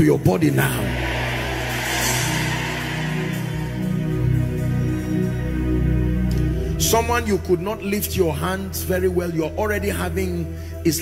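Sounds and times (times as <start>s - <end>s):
sustained chords music: 0.4s - 6.8s.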